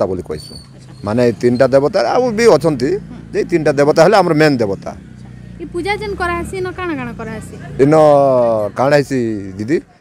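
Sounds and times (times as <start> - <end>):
man talking in a low voice: 7.8 - 10.0.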